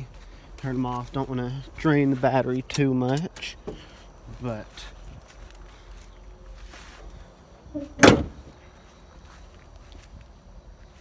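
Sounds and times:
car hood slamming shut: 7.8s - 8.5s.

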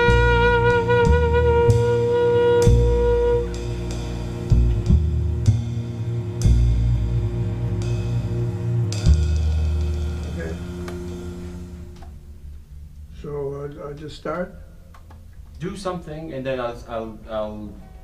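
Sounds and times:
saxophone note: 0.0s - 4.9s
upright bass: 0.0s - 12.0s.

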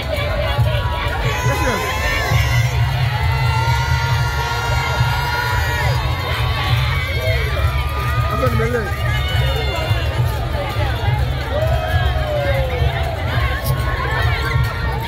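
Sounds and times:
crowd voices and shouts: 0.0s - 15.0s
dense continuous drumming: 0.0s - 15.0s.

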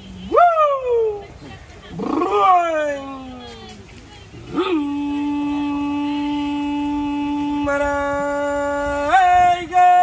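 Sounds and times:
person singing long calls: 4.3s - 10.0s.

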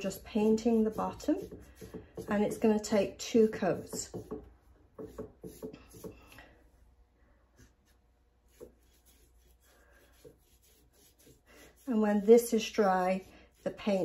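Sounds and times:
paintbrush scratching on glass: 0.0s - 6.3s, 7.6s - 14.0s.

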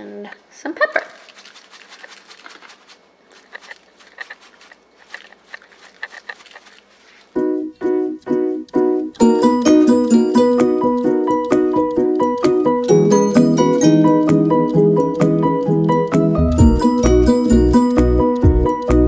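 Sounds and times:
music with plucked notes: 7.4s - 19.0s
pepper grinder clicking: 8.6s - 13.3s.

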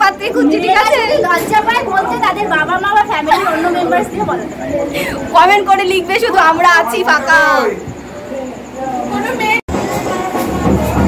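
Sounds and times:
women chattering: 0.0s - 11.0s.

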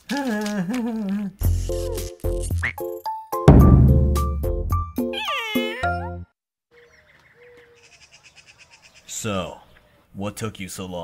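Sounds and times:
cat meow: 5.2s - 6.0s.

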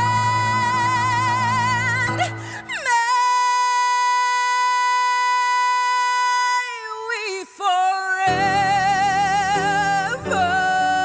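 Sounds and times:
wavering vocal run: 0.0s - 11.0s.

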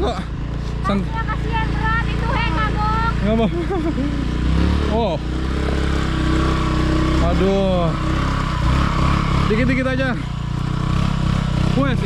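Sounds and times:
motor scooter engine humming: 0.0s - 12.0s.

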